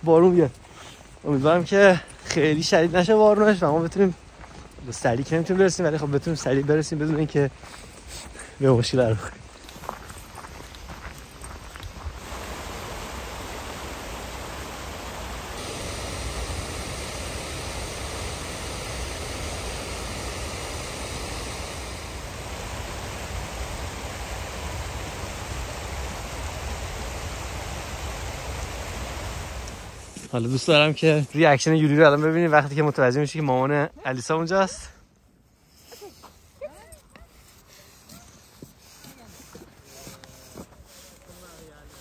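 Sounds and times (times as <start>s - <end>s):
stream rushing over rocks: 12.2s - 17.6s.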